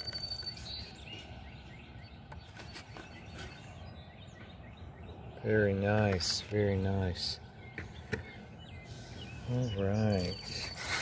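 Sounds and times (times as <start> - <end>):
bird chirps: 0.0 - 11.0.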